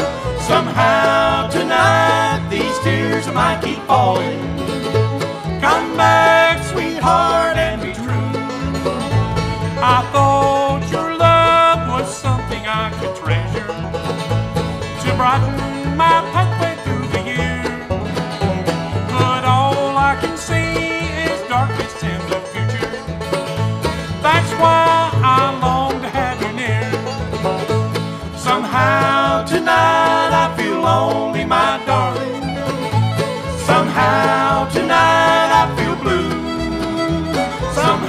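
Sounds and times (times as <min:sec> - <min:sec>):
acoustic guitar: 0:00.0 - 0:38.0
banjo: 0:00.0 - 0:38.0
fiddle: 0:00.0 - 0:38.0
mandolin: 0:00.0 - 0:38.0
upright bass pulse: 0:00.0 - 0:38.0.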